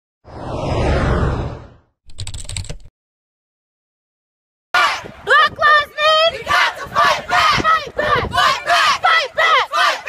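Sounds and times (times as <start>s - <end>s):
whoosh: 0.2s - 1.9s
typewriter-like clicks: 2.1s - 2.9s.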